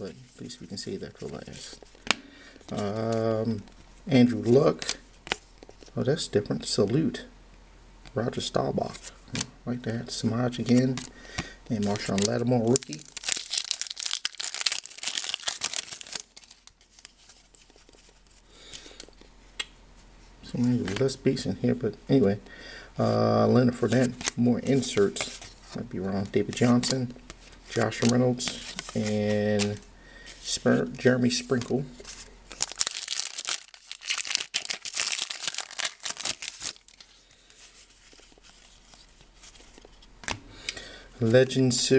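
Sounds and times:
plastic wrapper tearing and crinkling: 11.8 - 18.3, 31.4 - 39.9.

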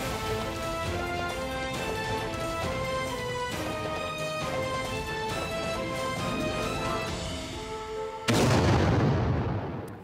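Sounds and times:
theme tune: 0.0 - 9.1
loud bass boom hit: 8.3 - 9.8.

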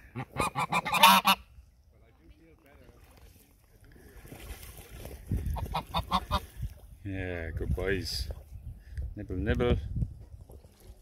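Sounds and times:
geese honking: 0.0 - 1.5, 5.6 - 6.4.

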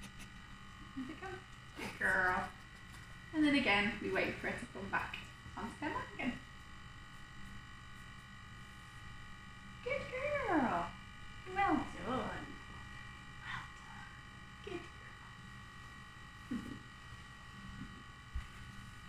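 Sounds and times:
steady electrical hum: 0.0 - 19.0.

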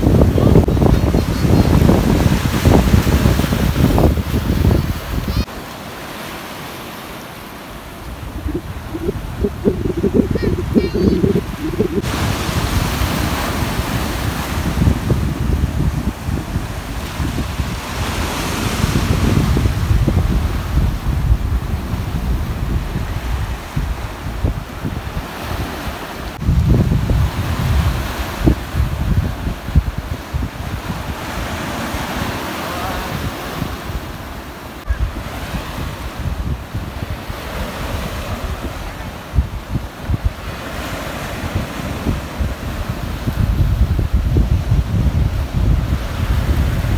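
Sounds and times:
wind buffeting microphone: 0.0 - 5.5, 7.9 - 32.4, 33.0 - 46.9
small waves breaking: 1.8 - 19.7.

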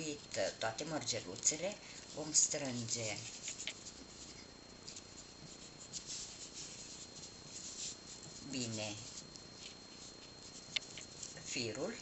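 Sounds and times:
fingers rustling and scratching wire: 0.0 - 11.9.

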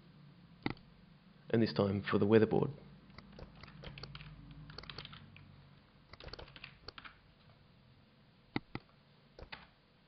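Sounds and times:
faint keyboard typing: 3.1 - 5.5, 6.1 - 7.2, 8.6 - 9.8.

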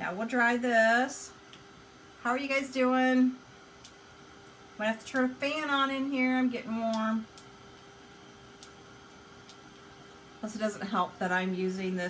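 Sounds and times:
heat gun humming: 3.8 - 12.0.

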